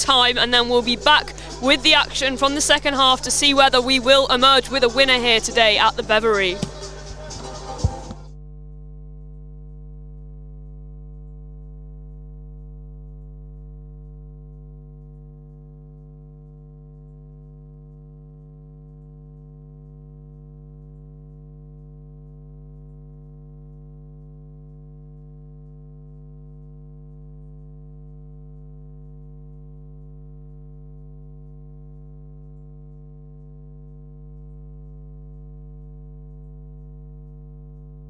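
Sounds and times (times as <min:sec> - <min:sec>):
steady electronic hum: 0:00.0 - 0:10.0.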